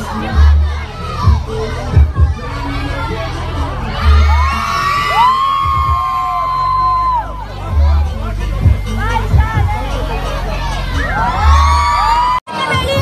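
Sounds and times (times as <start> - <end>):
children shouting and cheering: 0.0 - 13.0
music with deep bass thumps: 0.0 - 13.0
high-pitched screams: 3.8 - 7.4, 10.9 - 12.4.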